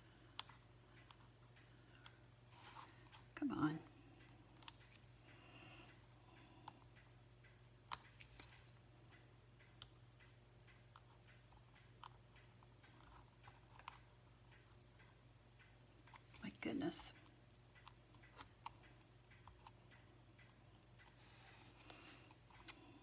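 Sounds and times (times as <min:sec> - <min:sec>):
faint steady hum: 0:00.0 - 0:23.0
tweezers clicking on paper and foam: 0:04.2 - 0:05.4, 0:06.4 - 0:23.0.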